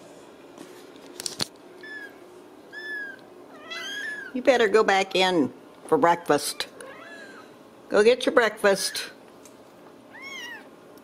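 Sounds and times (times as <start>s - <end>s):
kitten meowing: 1.8s - 4.3s, 10.1s - 10.7s.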